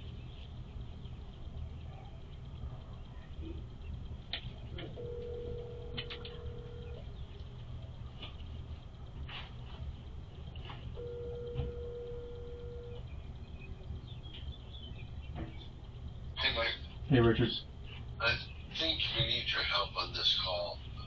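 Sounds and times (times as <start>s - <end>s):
telephone ringback tone: 5.0s - 7.0s, 11.0s - 13.0s.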